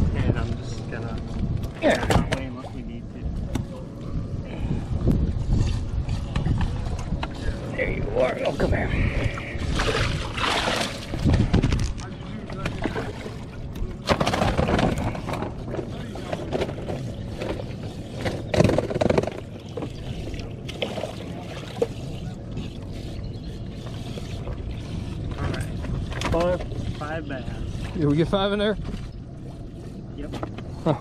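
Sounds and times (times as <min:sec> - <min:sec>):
steady low rumble: 0:00.0 - 0:31.0
water splashing: 0:08.4 - 0:11.3, 0:17.0 - 0:30.0.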